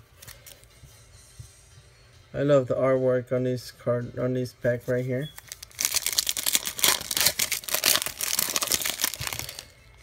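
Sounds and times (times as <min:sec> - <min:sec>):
wrapper crinkling being torn open: 0:05.4 - 0:09.7.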